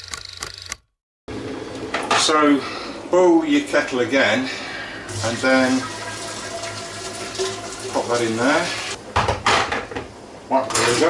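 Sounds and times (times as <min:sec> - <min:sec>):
water pouring into metal keg: 0:05.1 - 0:09.0.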